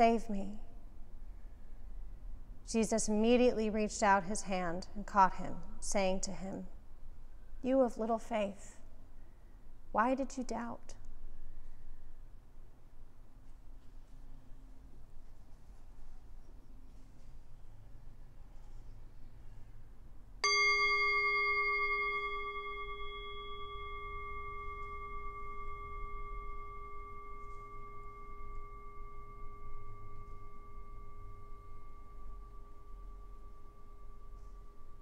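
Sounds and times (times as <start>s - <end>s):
metal singing bowl ringing: 20.4s - 35.0s.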